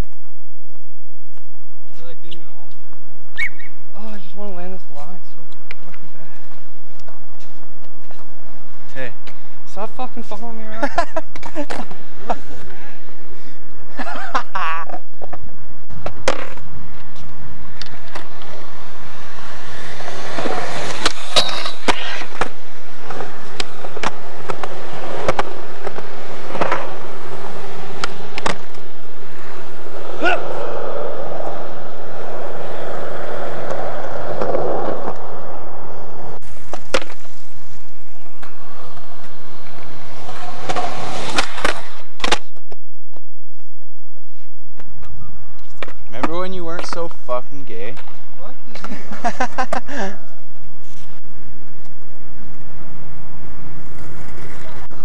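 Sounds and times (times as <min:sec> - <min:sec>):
skateboard wheels rolling on concrete: 0:00.0 - 0:55.0.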